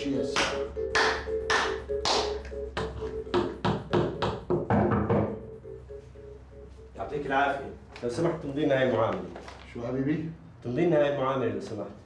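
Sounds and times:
music: 0:00.0 - 0:08.3
hand claps: 0:00.3 - 0:04.4.

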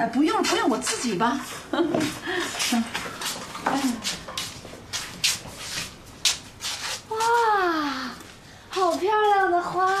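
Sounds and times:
shoes scuffing: 0:02.0 - 0:07.5.

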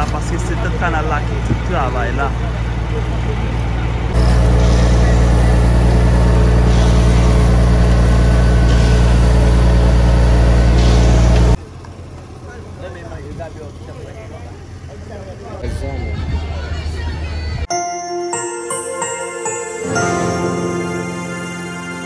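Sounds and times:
voices: 0:00.0 - 0:05.6
diesel engine running: 0:00.0 - 0:15.6.

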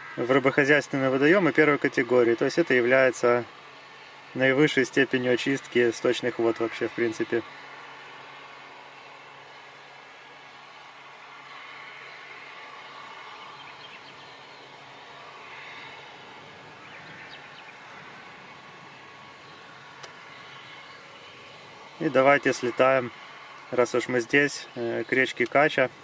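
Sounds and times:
drone propellers humming: 0:00.0 - 0:26.0.

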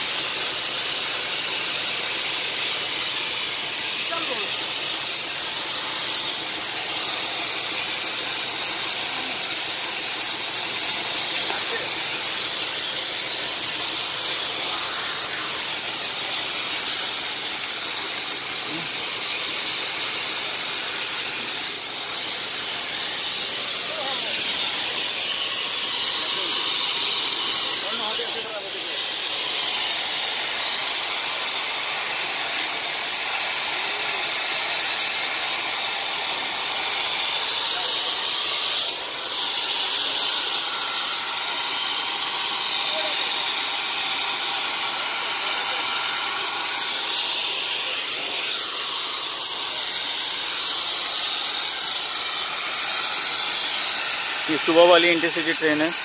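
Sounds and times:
high-pitched hiss: 0:00.0 - 0:56.0.

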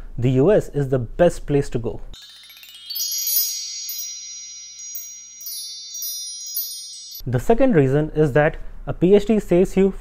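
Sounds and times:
shimmering bell-like chime: 0:02.2 - 0:07.3.

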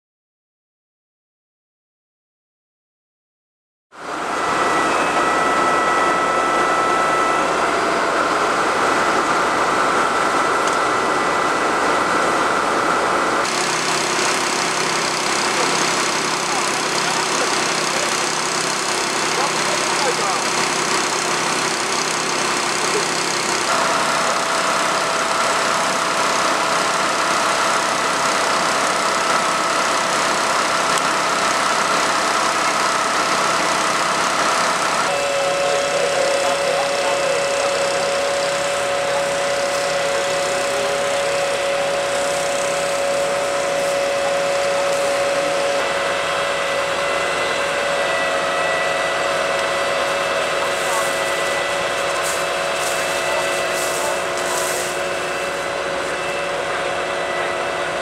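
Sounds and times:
whining tones: 0:04.0 - 0:58.0
vehicle engines idling: 0:07.2 - 0:58.0.

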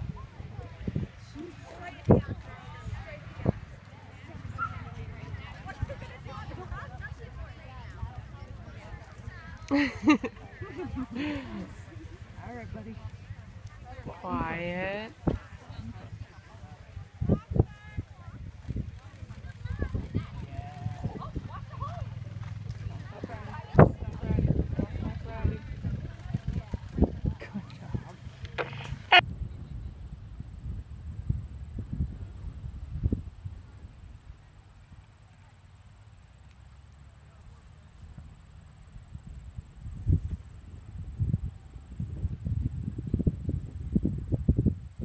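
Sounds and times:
faint distant voices: 0:00.0 - 0:29.2
spectators talking: 0:00.0 - 0:29.2
steady low rumble: 0:00.0 - 0:35.0
horse hoofbeats cantering: 0:15.1 - 0:29.2.

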